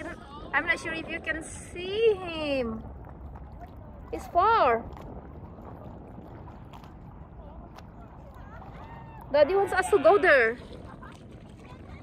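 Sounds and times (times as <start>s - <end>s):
light water sounds: 0.0s - 12.0s
wind rumbling on microphone: 0.0s - 12.0s.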